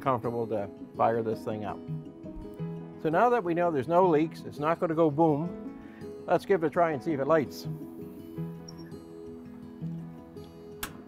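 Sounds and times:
acoustic guitar music: 0.0s - 11.0s
grill igniter click: 10.4s - 11.0s.

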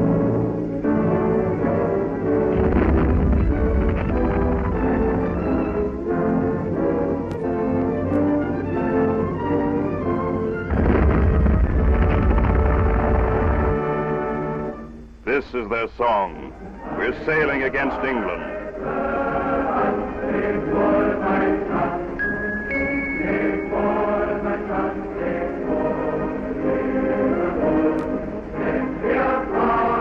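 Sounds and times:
orchestral strings: 0.0s - 30.0s
timpani rolls: 1.2s - 7.2s, 8.4s - 14.8s
man narrating: 15.2s - 18.5s.

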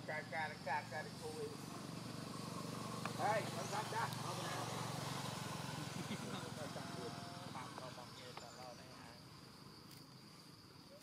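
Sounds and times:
small engine idling: 0.0s - 9.7s.

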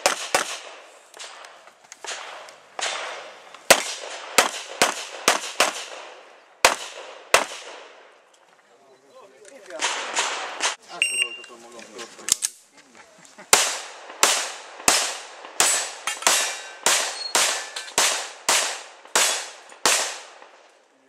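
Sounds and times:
pistol shots: 0.0s - 8.1s, 9.7s - 10.8s, 13.5s - 20.6s
voices: 8.6s - 13.6s
high beep: 11.0s - 11.6s.

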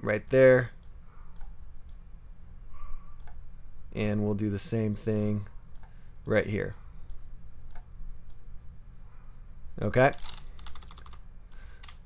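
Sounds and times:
low steady hum: 0.0s - 12.0s
computer mouse clicks: 0.8s - 2.0s, 3.2s - 3.4s, 5.7s - 8.4s.

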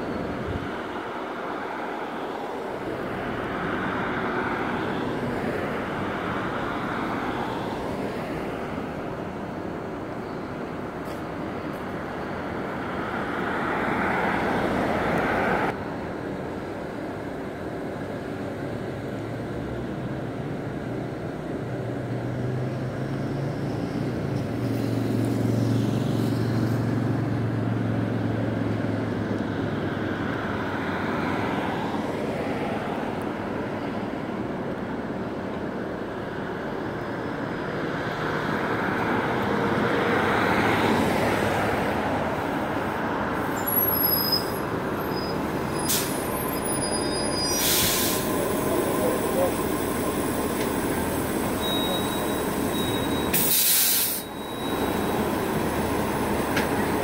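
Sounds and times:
diesel bus engine: 0.0s - 57.0s
hum of cars: 0.0s - 57.0s
pickup truck passing: 37.9s - 57.0s.

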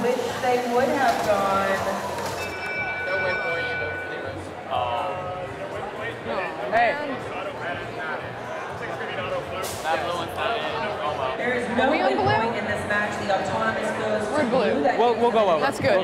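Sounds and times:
chatter of many voices: 0.0s - 16.0s.

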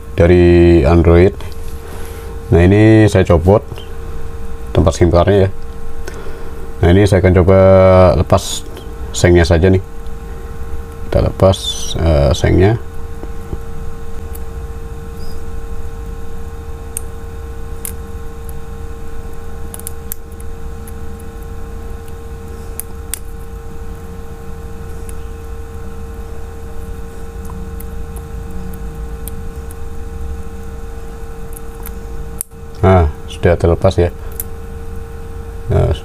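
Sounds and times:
background hum with held tone: 0.0s - 36.0s.

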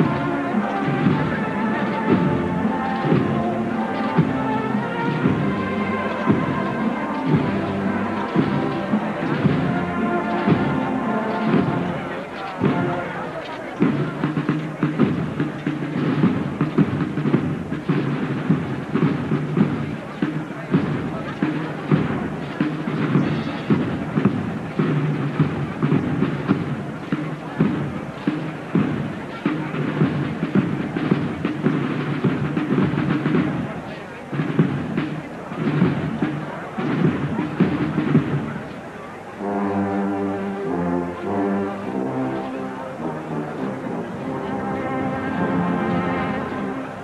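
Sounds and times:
brass band playing: 0.0s - 47.0s
crowd noise: 0.0s - 47.0s
drums: 0.0s - 47.0s.

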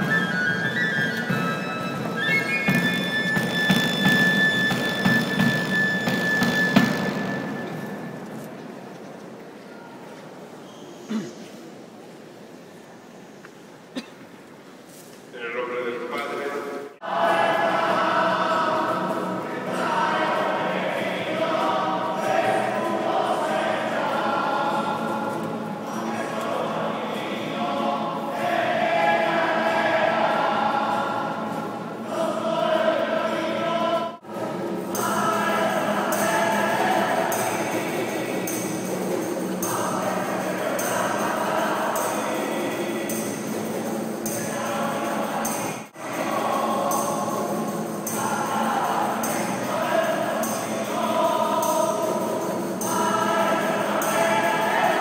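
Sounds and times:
instruments accompanying: 0.0s - 8.5s
choir singing: 0.0s - 8.8s, 17.0s - 55.0s.

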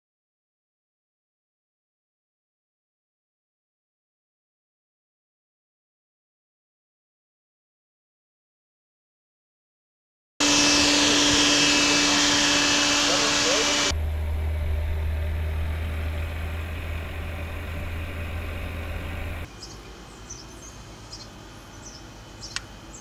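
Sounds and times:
car road and engine noise: 10.4s - 23.0s
low rumble: 13.8s - 19.5s
faint high bird chirps: 19.4s - 23.0s.

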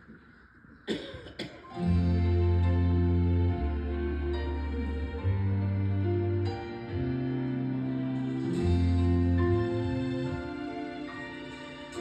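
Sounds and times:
person coughing: 0.8s - 1.7s
instrumental music: 1.8s - 12.0s.

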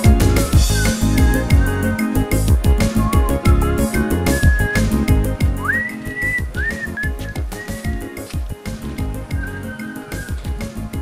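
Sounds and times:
soundtrack music with beat: 0.0s - 11.0s
high whistle-like melody: 0.2s - 2.0s, 2.9s - 8.3s, 9.3s - 10.7s.

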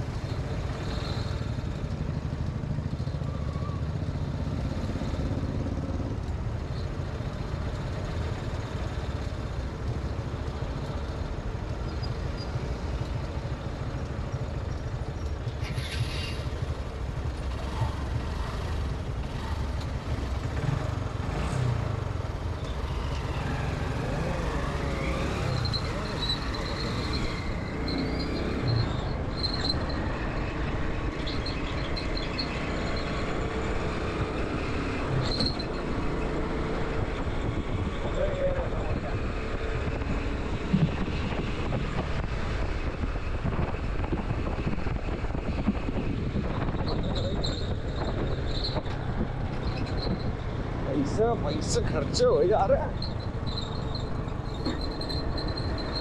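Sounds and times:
traffic passing: 0.0s - 56.0s
wind on microphone: 39.7s - 50.5s.

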